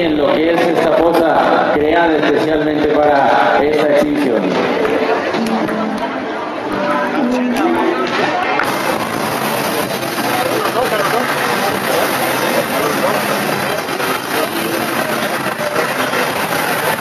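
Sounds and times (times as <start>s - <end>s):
many people's voices: 0.0s - 17.0s
rowing machine flywheels whirring: 8.6s - 17.0s.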